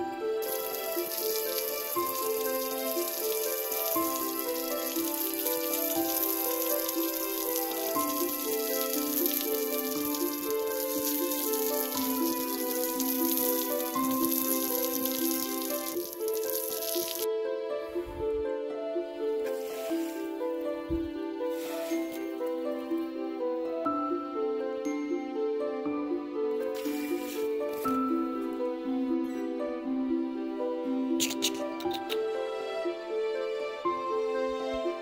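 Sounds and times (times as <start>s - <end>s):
gentle background music: 0.0s - 35.0s
hose water spraying on wall: 0.4s - 17.3s, 21.4s - 22.5s, 26.8s - 28.0s.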